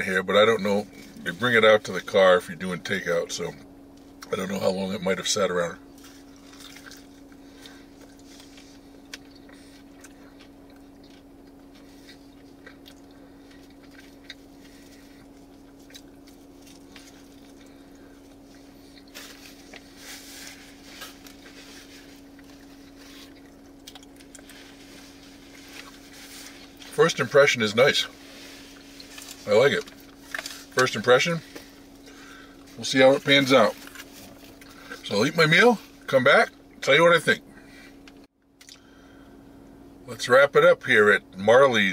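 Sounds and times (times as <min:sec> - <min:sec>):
steady low hum: 0:00.0 - 0:41.9
person chewing food: 0:05.9 - 0:26.9, 0:38.6 - 0:38.9.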